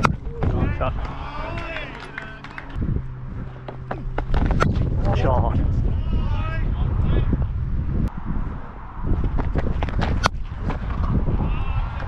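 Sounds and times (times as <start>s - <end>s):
wind rumbling on microphone: 0.0s - 1.6s, 2.7s - 12.0s
distant voice: 0.3s - 2.8s.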